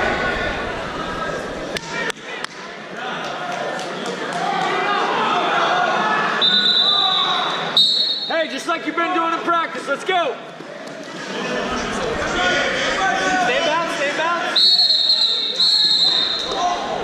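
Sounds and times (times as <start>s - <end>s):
voices chattering in a hall: 0.0s - 17.0s
high whistle blown: 6.4s - 8.3s, 14.6s - 16.6s.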